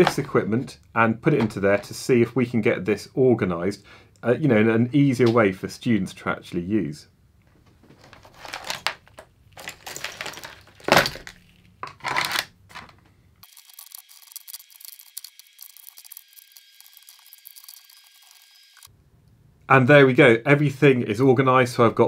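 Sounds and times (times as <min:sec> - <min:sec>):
wires and plastic clattering: 0:07.4 - 0:17.6.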